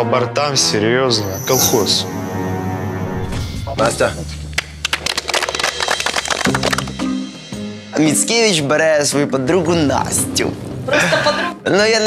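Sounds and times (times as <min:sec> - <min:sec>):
background music: 0:00.0 - 0:12.0
small group applauding: 0:04.6 - 0:07.1.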